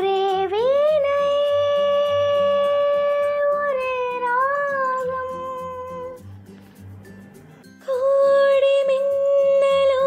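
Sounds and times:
child singing long high note: 0.0s - 6.2s
soft backing track with bass: 0.0s - 10.0s.

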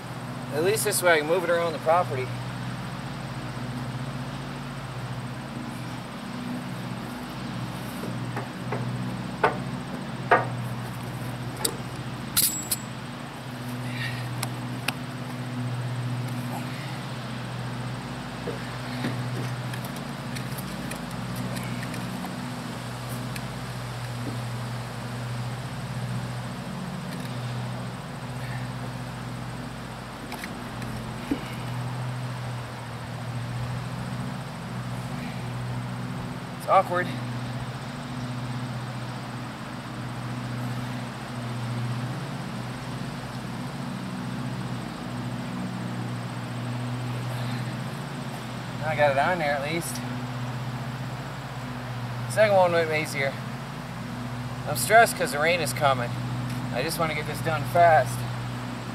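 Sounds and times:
steady low hum: 0.0s - 58.9s.

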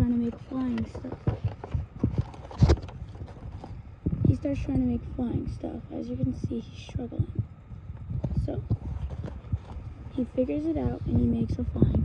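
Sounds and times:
sketchbook page turning: 0.2s - 3.8s, 8.7s - 9.8s.

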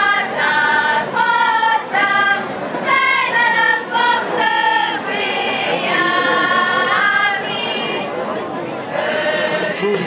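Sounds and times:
women's choir singing unaccompanied: 0.0s - 10.0s.

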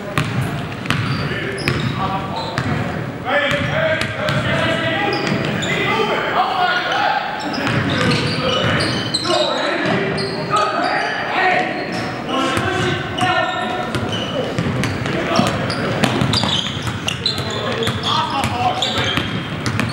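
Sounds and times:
sneakers squeaking on floor: 0.0s - 6.1s, 6.7s - 19.9s
players calling out: 0.0s - 19.9s
basketball bouncing on hardwood: 14.6s - 19.9s.

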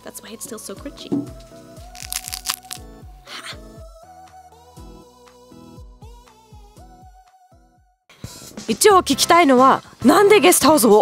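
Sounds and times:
background music with steady beat: 0.0s - 2.0s, 2.8s - 11.0s
wafer shell cracking and crunching: 1.9s - 2.8s.

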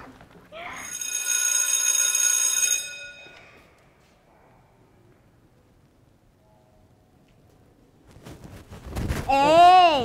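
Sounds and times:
electric school bell ringing: 0.8s - 3.6s.

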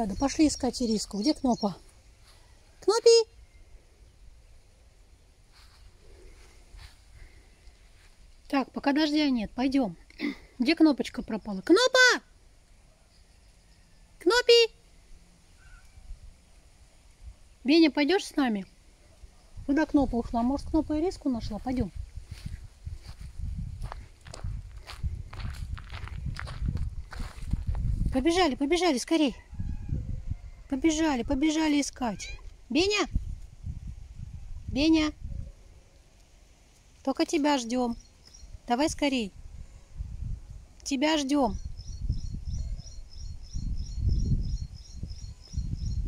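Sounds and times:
footsteps on gravel and grass: 5.5s - 7.1s, 21.5s - 28.2s
steady low rumble: 19.6s - 28.6s.

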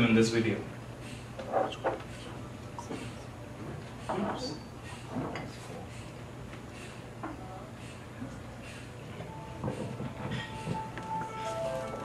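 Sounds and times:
held musical note: 10.4s - 12.0s.

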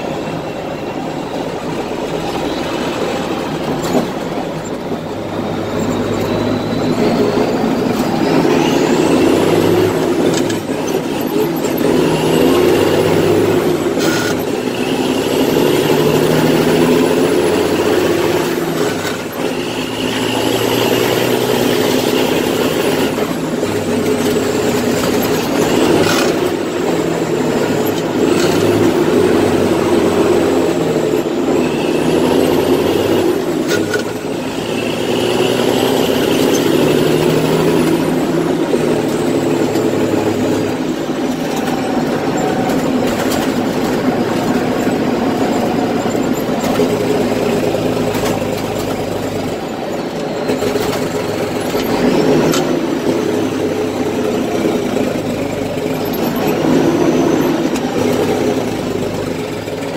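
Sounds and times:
heavy diesel truck engine: 0.0s - 59.9s
high whistle: 5.8s - 9.3s.

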